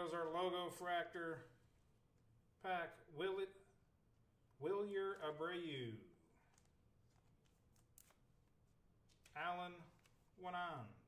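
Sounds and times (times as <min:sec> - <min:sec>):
trading cards rustling: 0:06.4 - 0:10.3.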